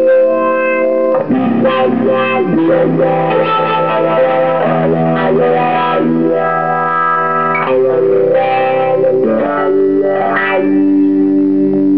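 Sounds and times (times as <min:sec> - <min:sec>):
distorted electric guitar: 0:00.0 - 0:11.9.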